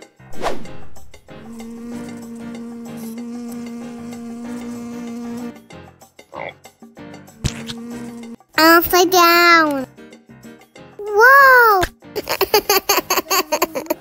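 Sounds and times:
cartoon frog croak: 6.3 - 6.6.

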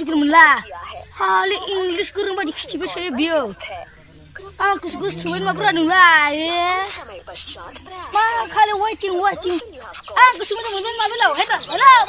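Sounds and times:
boys talking: 0.0 - 12.0
insects droning: 0.0 - 12.0.

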